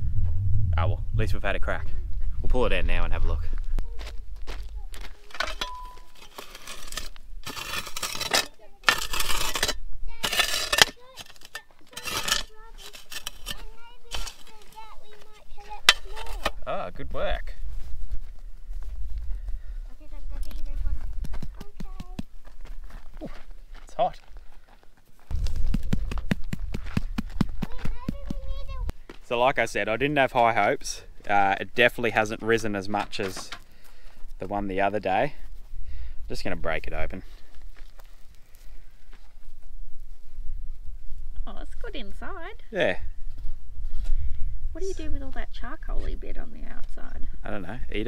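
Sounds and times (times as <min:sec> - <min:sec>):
charcoal and rock clinking: 0:04.9 - 0:16.6
shovel scraping through ash: 0:05.2 - 0:14.8.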